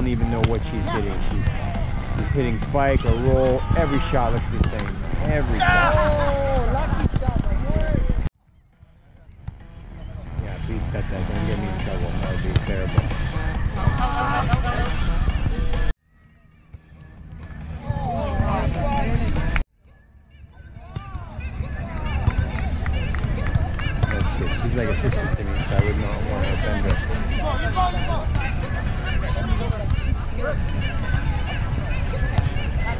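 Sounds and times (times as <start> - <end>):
people talking and calling out: 0.0 - 32.9
wind on microphone: 4.4 - 8.3.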